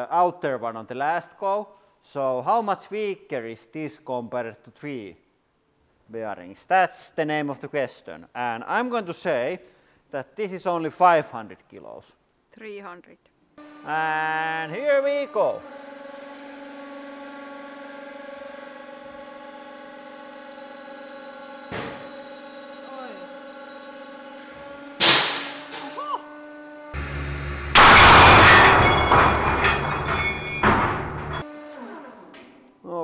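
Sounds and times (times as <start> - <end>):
hydraulic press humming: 13.6 - 32.7
ball bearing bursting with bang: 25.0 - 26.0, 27.7 - 31.4
crashing noise: 27.7 - 31.4.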